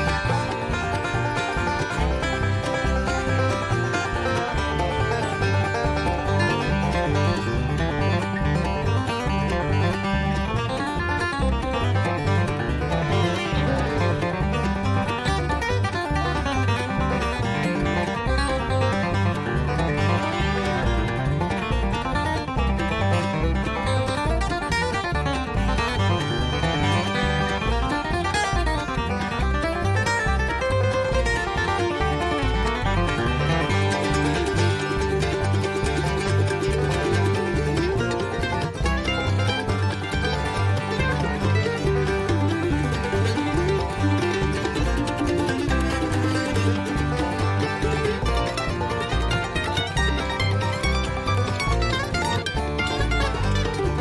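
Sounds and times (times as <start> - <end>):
bluegrass band music: 0.0 - 54.0.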